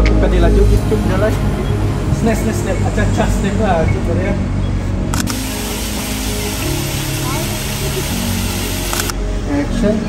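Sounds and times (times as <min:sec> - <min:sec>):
background music with held notes: 0:00.0 - 0:10.0
street traffic noise: 0:00.0 - 0:10.0.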